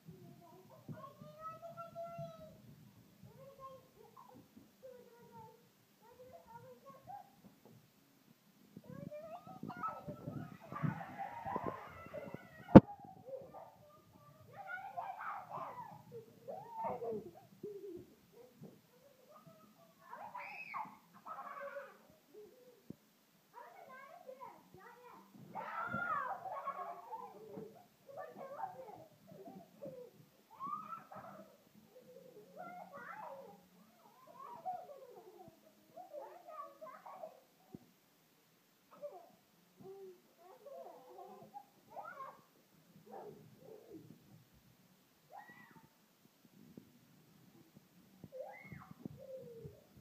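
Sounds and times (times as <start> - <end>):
young children babbling and squealing: 0.1 - 7.5, 8.8 - 37.9, 38.9 - 44.3, 45.3 - 46.0, 47.7 - 50.0.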